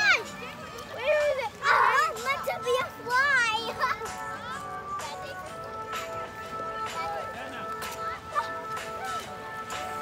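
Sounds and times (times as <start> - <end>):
children shouting and squealing: 0.0 - 5.8, 6.6 - 10.0.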